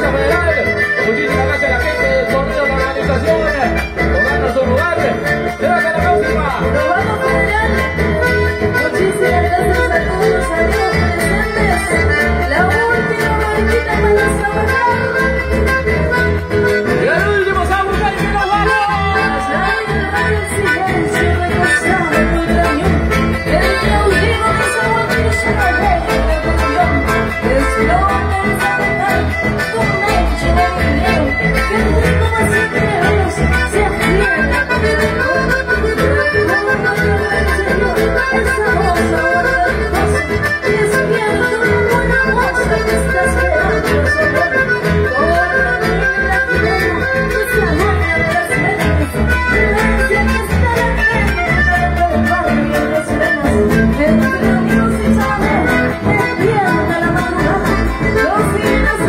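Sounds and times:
accordion melody: 0.0s - 59.0s
acoustic guitar: 0.0s - 59.0s.

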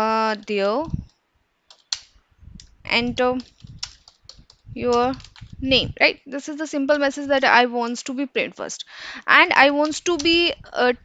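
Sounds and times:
computer keyboard keystrokes: 0.4s - 5.6s, 9.7s - 10.4s.

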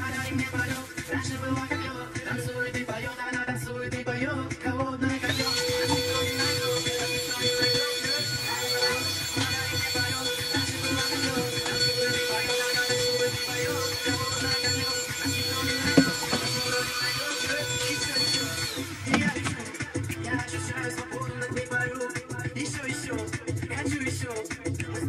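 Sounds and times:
handheld vacuum cleaner running: 0.0s - 3.2s, 5.1s - 20.1s.

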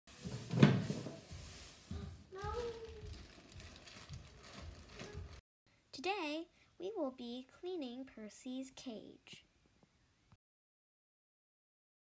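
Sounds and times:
paper bedding rustling: 0.1s - 5.4s.

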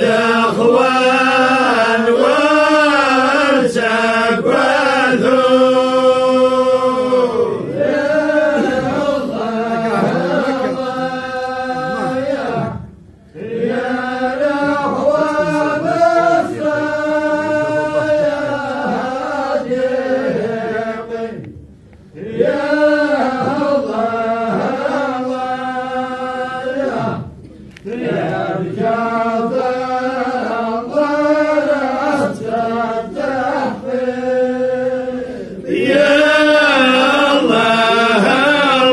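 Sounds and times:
voices chanting: 0.0s - 21.5s, 27.9s - 38.9s.

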